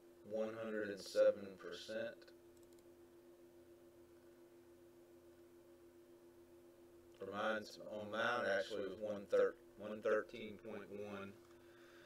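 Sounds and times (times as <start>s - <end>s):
steady low hum: 0.0s - 12.0s
computer mouse clicks: 2.6s - 2.9s.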